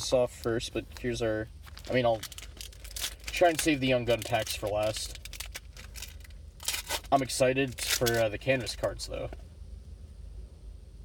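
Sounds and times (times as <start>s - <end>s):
foil wrappers crinkling: 1.0s - 8.9s.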